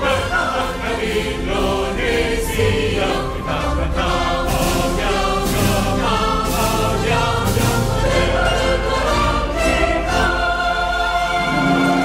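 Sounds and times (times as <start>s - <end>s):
mixed choir singing in harmony: 0.0s - 12.0s.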